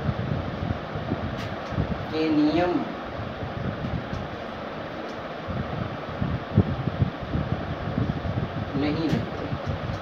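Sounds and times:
steady fan noise: 0:00.0 - 0:10.0.

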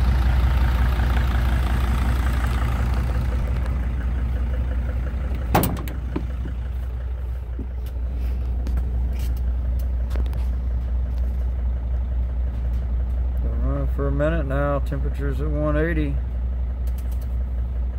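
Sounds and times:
van engine idling: 0:00.0 - 0:17.9.

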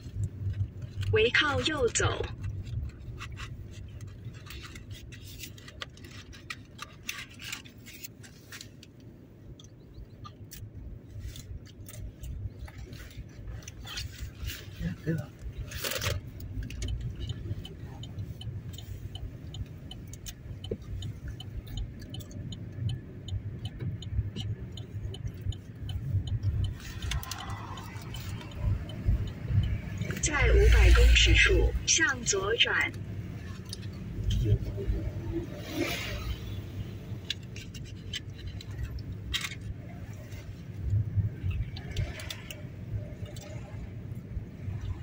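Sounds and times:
turn signal ticking: 0:00.0 - 0:07.0, 0:08.8 - 0:45.0
faint scratchy clicks and rubs: 0:00.0 - 0:22.9, 0:37.1 - 0:43.9
car cabin rumble: 0:00.0 - 0:45.0.

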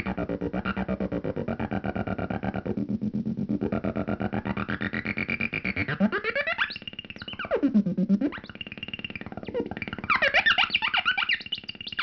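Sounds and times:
pulsing synthesizer tone: 0:00.0 - 0:12.0.

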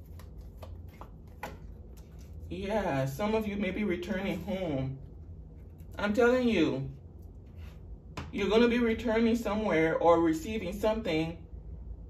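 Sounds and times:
cards flicking and tapping: 0:00.0 - 0:02.3.

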